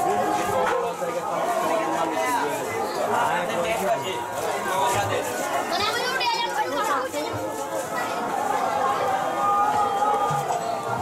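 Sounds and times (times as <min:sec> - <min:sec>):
crowd chatter on street: 0:00.0 - 0:11.0.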